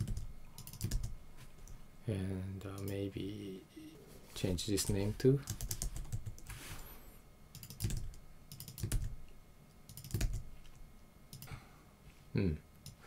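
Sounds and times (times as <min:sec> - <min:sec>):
computer keyboard typing: 0:00.0 - 0:01.1, 0:04.8 - 0:06.5, 0:07.5 - 0:09.2, 0:09.9 - 0:10.4, 0:11.3 - 0:11.5.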